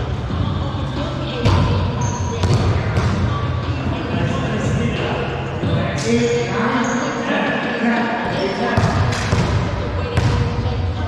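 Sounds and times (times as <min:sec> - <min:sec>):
players' voices echoing: 0:00.1 - 0:11.0.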